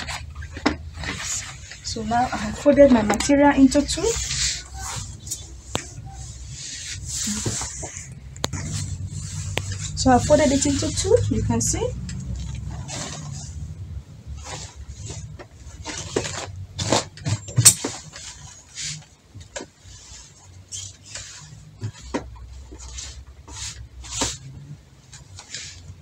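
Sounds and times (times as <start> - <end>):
fabric rustling: 0.0 - 26.0.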